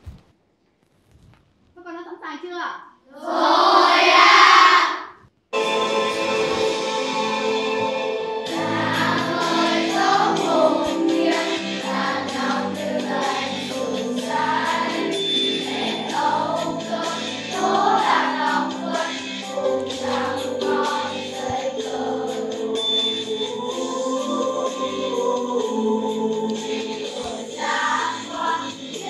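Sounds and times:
children singing together: 0:03.2 - 0:29.0
backing music track: 0:05.6 - 0:29.0.

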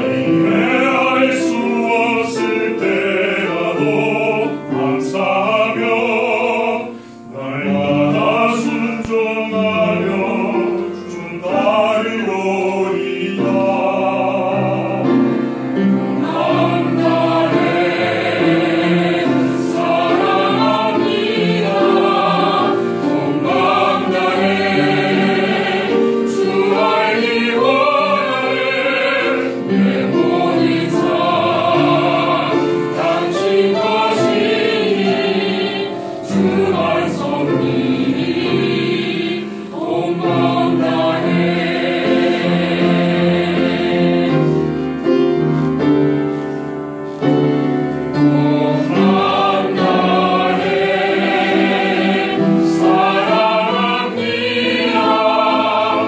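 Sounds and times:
mixed choir singing in harmony: 0:00.0 - 0:56.0
piano accompaniment: 0:00.0 - 0:56.0.

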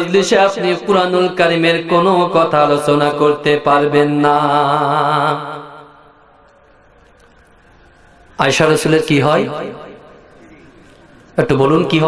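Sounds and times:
man chanting through microphone: 0:00.0 - 0:06.1, 0:11.4 - 0:12.0
faint background noise: 0:00.0 - 0:12.0.

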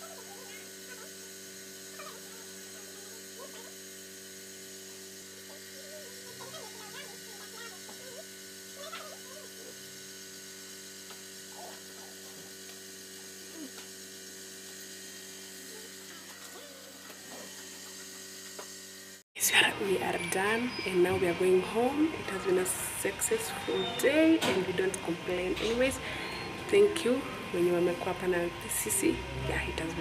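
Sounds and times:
low machine hum: 0:00.0 - 0:30.0.

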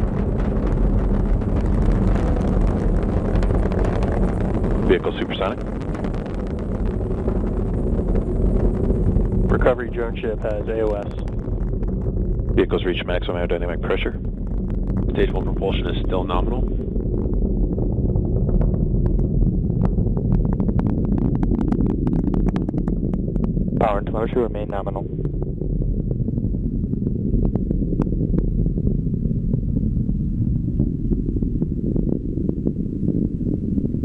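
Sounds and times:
rocket engine rumble: 0:00.0 - 0:34.0.

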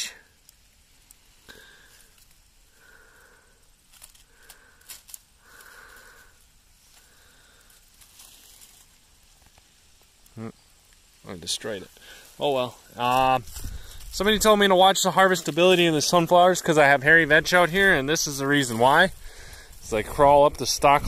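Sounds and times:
plant stems rustling: 0:00.0 - 0:21.0
person breathing: 0:01.4 - 0:08.1, 0:12.0 - 0:12.4, 0:13.5 - 0:14.1, 0:19.2 - 0:19.8.

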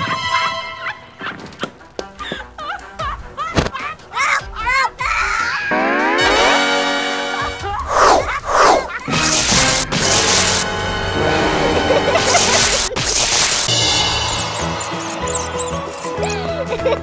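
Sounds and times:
cartoon background music: 0:00.0 - 0:17.0
falling whooshes: 0:07.8 - 0:09.8
electric zap: 0:07.9 - 0:10.8, 0:12.3 - 0:14.4
crackling hiss: 0:08.2 - 0:10.7.

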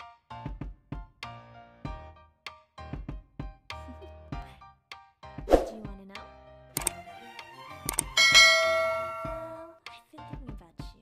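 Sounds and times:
background music: 0:00.0 - 0:11.0
notification bell chime: 0:08.2 - 0:09.6.

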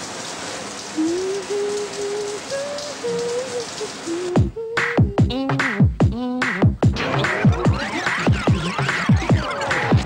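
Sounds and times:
shower water spraying: 0:00.0 - 0:04.7
beat-driven song: 0:04.4 - 0:10.0.

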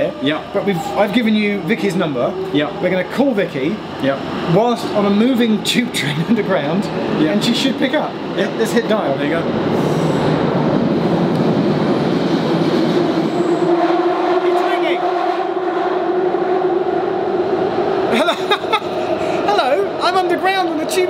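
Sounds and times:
man talking: 0:00.0 - 0:09.6, 0:19.4 - 0:21.0
train rumbling through tunnel: 0:00.0 - 0:21.0.

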